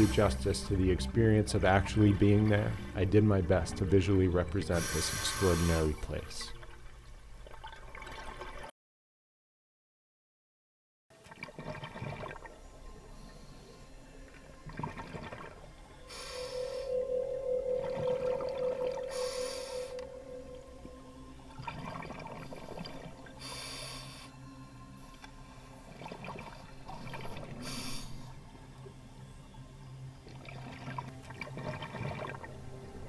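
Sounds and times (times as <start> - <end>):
diver breathing through regulator: 4.7 - 6.0, 16.0 - 21.0, 22.0 - 24.4, 25.0 - 28.4
steady hum: 12.5 - 31.5.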